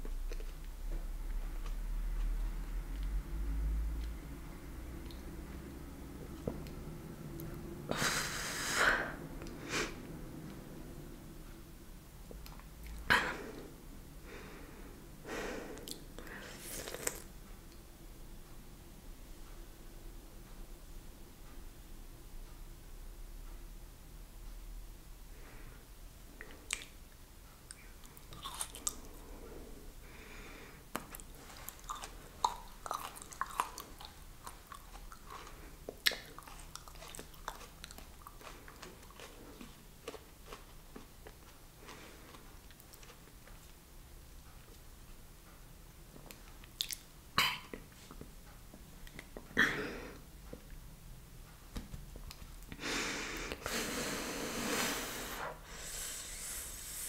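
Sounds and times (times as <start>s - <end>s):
person breathing heavily: 13.2s - 16.7s, 29.2s - 30.9s, 52.8s - 57.0s
chewing with wet crunches: 28.0s - 29.2s, 31.0s - 43.8s, 46.2s - 47.1s.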